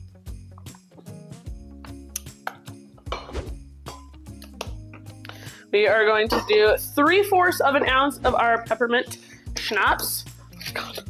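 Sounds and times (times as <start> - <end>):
background music: 0.0 - 11.0
metal jigger clinks: 6.3 - 6.7.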